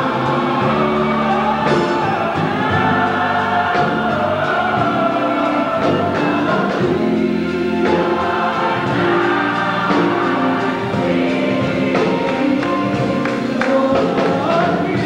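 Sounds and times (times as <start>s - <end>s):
gospel choir singing: 0.0s - 15.0s.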